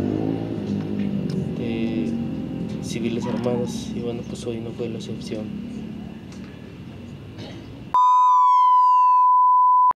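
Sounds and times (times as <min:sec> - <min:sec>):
falling electronic tone: 0:08.0 - 0:09.9
high electronic flatline beep: 0:08.0 - 0:10.0.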